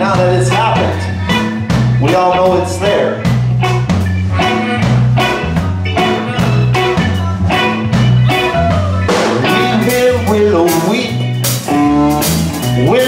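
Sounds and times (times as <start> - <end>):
drum kit beat: 0.0 - 13.0
electric bass: 0.0 - 13.0
electric guitar: 0.0 - 13.0
keyboard: 0.0 - 13.0
harmonica: 3.9 - 8.4.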